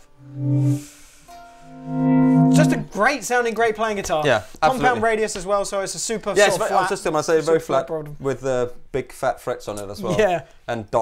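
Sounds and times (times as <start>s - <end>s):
electric guitar notes: 0.0s - 3.0s.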